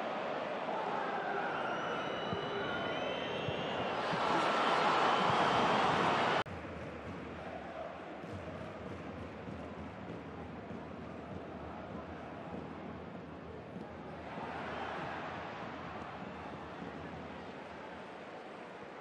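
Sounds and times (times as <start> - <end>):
stadium crowd roar: 0.0 - 19.0
steady stadium murmur: 0.0 - 19.0.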